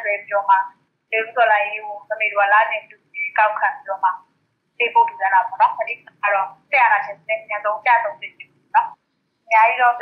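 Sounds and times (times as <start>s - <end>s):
person speaking over telephone: 0.0s - 4.2s, 4.8s - 10.0s.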